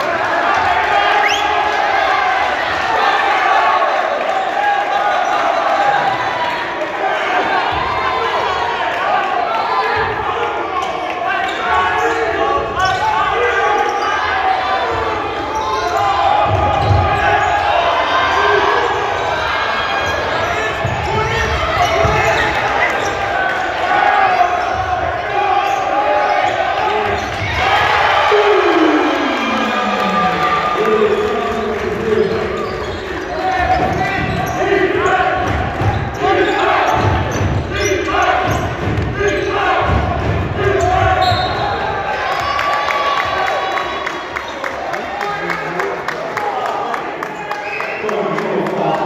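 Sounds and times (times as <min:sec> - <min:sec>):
voices in large hall: 0:00.0 - 0:49.0.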